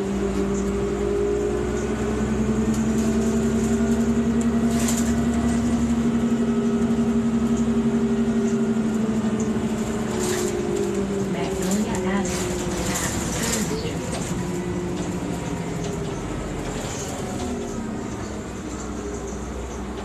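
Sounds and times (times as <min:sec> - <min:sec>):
bus engine humming: 0:00.0 - 0:20.0.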